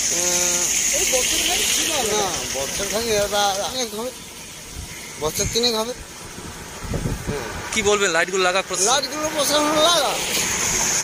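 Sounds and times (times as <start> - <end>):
man speaking: 7.2 - 10.3.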